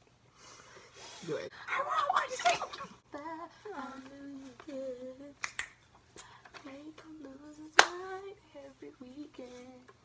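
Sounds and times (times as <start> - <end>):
woman singing wordless notes: 3.0 - 5.4, 6.5 - 10.0.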